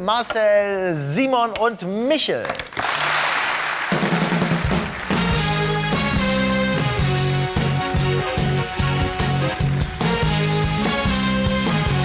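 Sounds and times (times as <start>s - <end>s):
drums and cymbals: 3.9s - 12.0s
band playing held chords: 4.0s - 12.0s.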